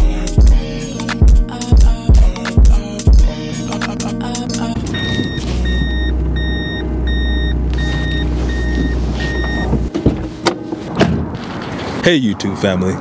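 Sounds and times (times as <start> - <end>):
diesel engine drone: 2.9 - 12.0
reversing beeper: 4.9 - 9.8.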